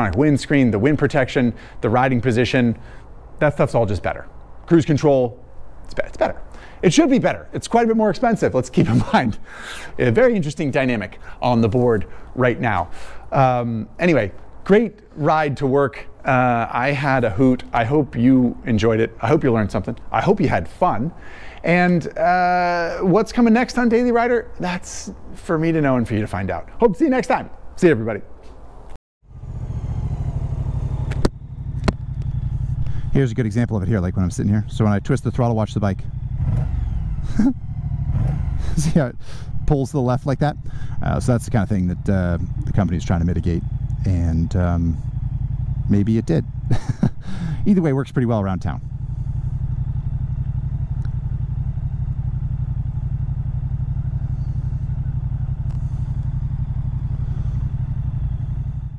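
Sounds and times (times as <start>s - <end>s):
motorcycle engine idling: 0.0s - 26.7s, 29.2s - 58.9s.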